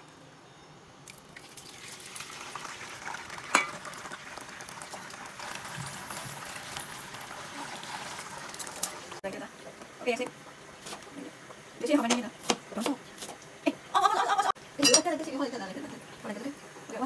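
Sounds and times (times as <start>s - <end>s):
tofu sizzling in hot oil: 1.3s - 13.6s.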